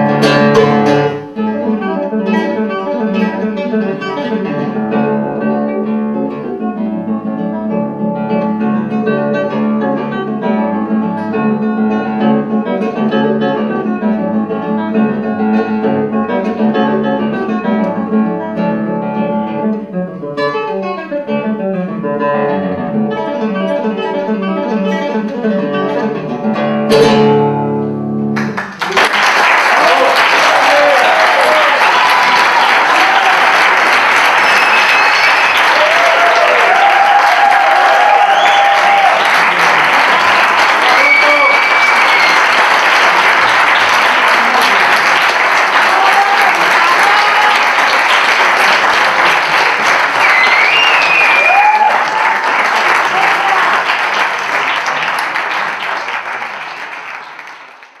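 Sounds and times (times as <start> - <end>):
audience applauding: 28.4 - 58.0.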